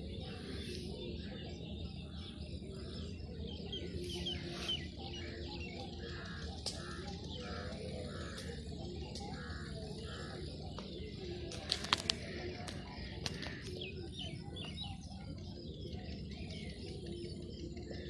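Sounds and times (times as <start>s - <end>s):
birds calling: 0.0s - 18.0s.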